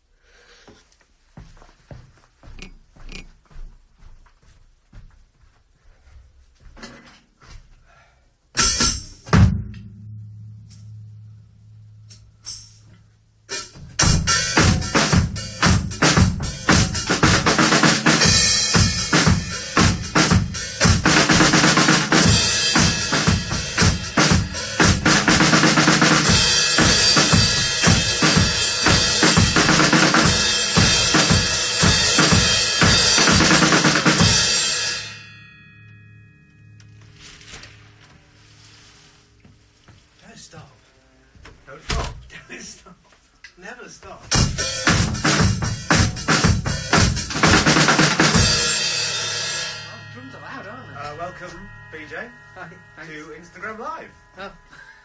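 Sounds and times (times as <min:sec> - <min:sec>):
acoustic drum kit: 0:08.6 - 0:11.2, 0:12.0 - 0:35.2, 0:44.2 - 0:53.8.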